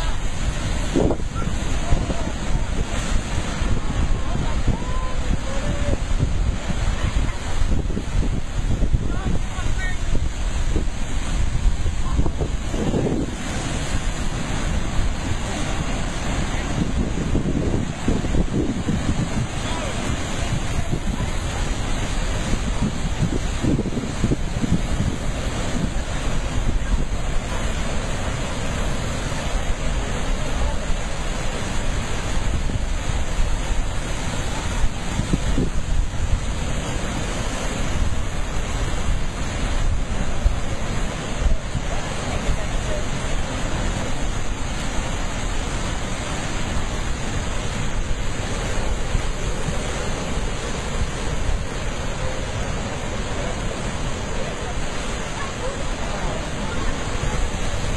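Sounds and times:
ocean surf on rocky shore: 0.0s - 57.9s
wind buffeting microphone: 0.0s - 57.9s.

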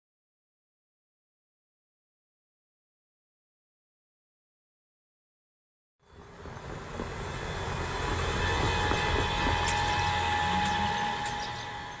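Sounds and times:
faint high whine: 6.0s - 12.0s.

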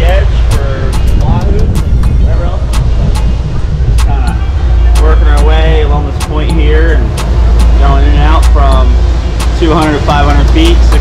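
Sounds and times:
man's voice: 0.0s - 2.9s, 4.0s - 11.0s
boat engines rumbling: 0.0s - 11.0s
rushing air: 0.0s - 11.0s
wind buffeting microphone: 0.0s - 11.0s.

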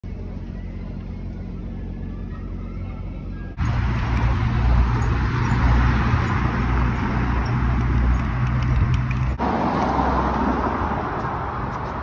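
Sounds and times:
bicycle tyre road noise: 3.6s - 12.0s.

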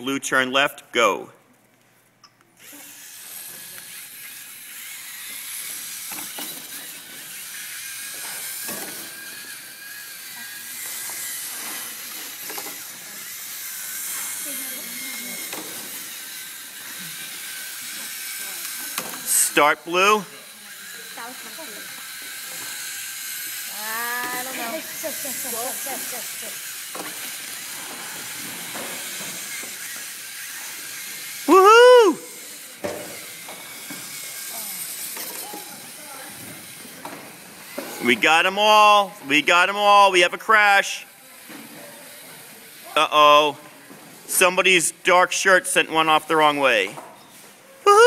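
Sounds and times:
children cheering: 31.5s - 32.3s.

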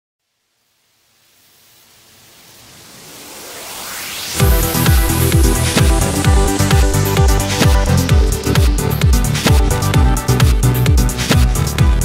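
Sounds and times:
hissing noise riser: 0.8s - 11.8s.

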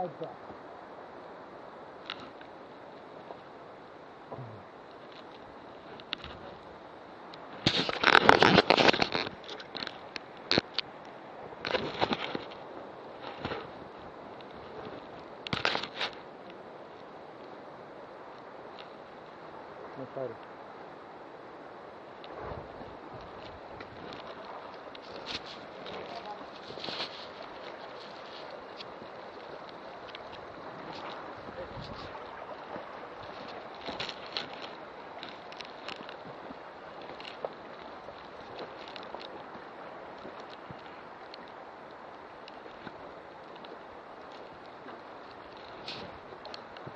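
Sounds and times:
steady outdoor hiss: 0.0s - 46.9s.

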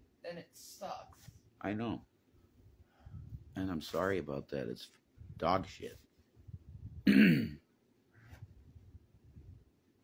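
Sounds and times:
person clearing throat: 7.0s - 7.7s.

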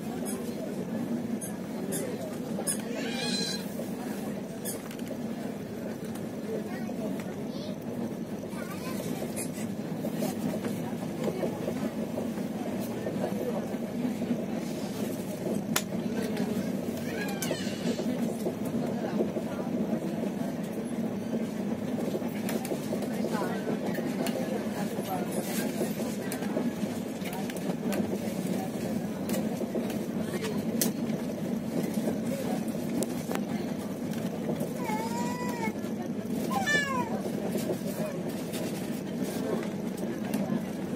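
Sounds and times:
train running noise from inside: 0.0s - 40.9s.

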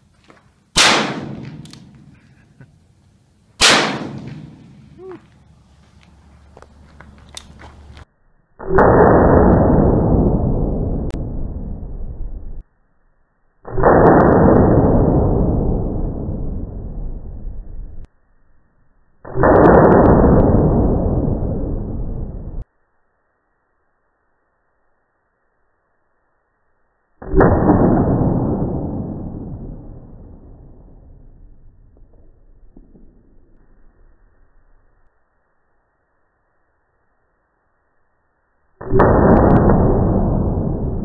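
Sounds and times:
slowed-down gunshots: 0.7s - 2.7s, 3.6s - 5.1s, 8.6s - 12.6s, 13.6s - 18.1s, 19.2s - 22.6s, 27.2s - 35.1s, 38.7s - 41.0s.

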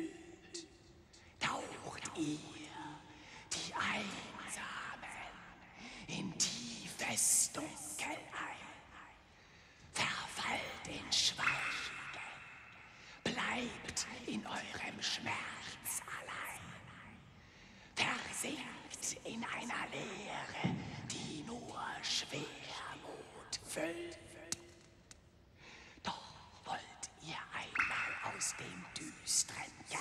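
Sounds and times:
person whispering: 1.3s - 9.2s, 10.0s - 17.2s, 26.0s - 30.0s.

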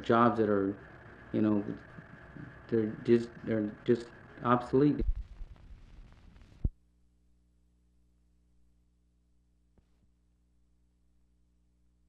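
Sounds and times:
film soundtrack hiss: 0.0s - 7.5s
faint steady hum: 0.0s - 12.0s.

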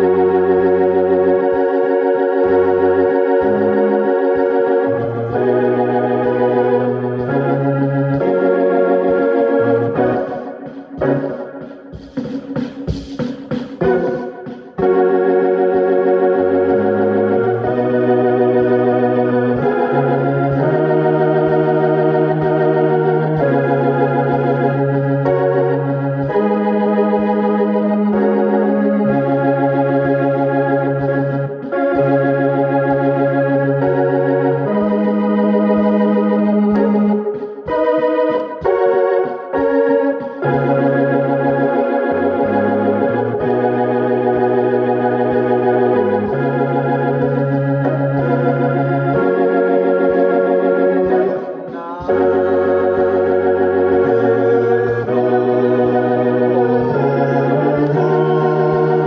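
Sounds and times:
clipped keyboard chord stabs: 0.0s - 59.0s
keyboard playing held chords: 0.0s - 59.0s.

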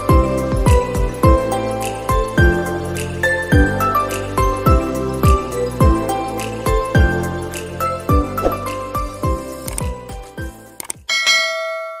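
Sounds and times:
background music: 0.0s - 11.6s
bell chime ringing: 11.1s - 12.0s.

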